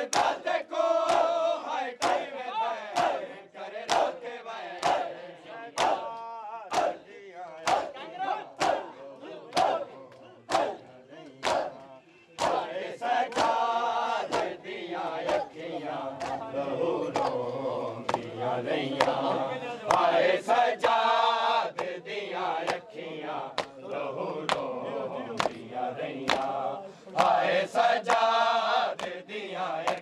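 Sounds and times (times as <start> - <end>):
hands slapping chests in unison: 0.0 - 2.3, 2.9 - 16.5, 17.1 - 30.0
men chanting: 0.0 - 30.0.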